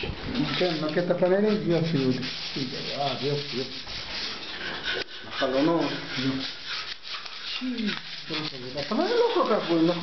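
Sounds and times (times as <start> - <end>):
person speaking: 7.5 - 10.0.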